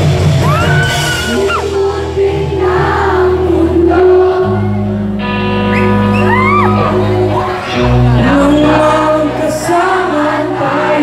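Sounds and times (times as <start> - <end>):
drums: 0.0 - 11.0
electric bass: 0.0 - 11.0
electric guitar: 0.0 - 11.0
person singing: 0.5 - 11.0.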